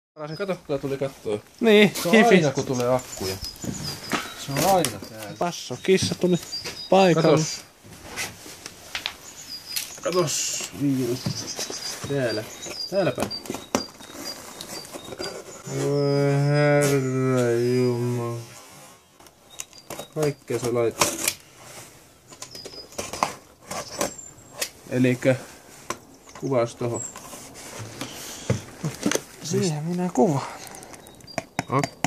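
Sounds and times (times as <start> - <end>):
high bird chirps: 0.2 - 1.0, 1.6 - 7.7, 9.0 - 20.9, 22.3 - 25.0, 29.4 - 32.0
cardboard parcel rustling: 0.8 - 31.2.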